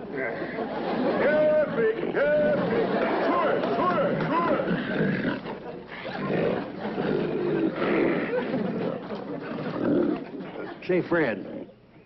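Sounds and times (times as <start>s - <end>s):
pigs grunting and squealing: 3.9s - 10.4s.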